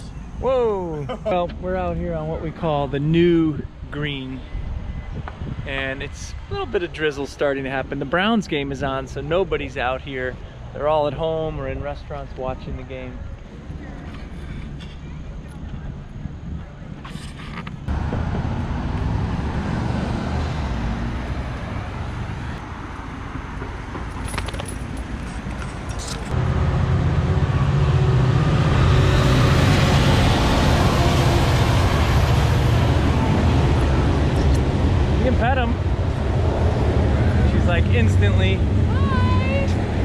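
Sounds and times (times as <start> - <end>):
road traffic passing: 0.0 - 40.0
freight train crossing steel bridge: 20.8 - 40.0.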